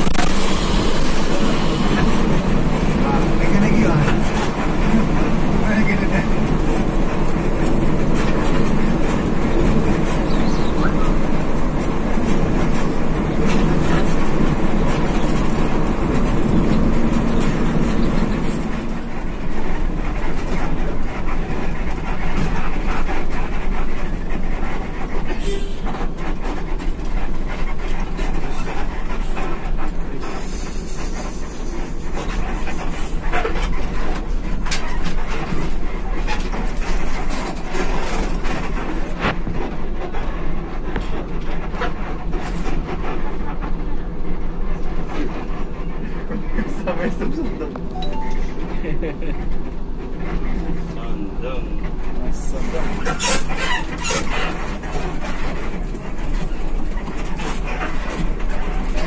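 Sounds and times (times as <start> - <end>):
coach engine and road rumble: 0.0 - 59.0.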